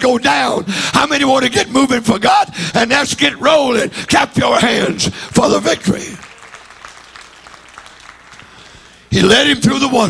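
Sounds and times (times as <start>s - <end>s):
congregation clapping: 4.5s - 10.0s.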